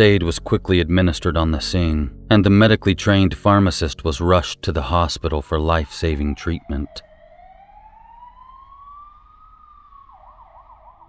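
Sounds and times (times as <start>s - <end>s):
emergency vehicle siren: 5.4s - 11.0s.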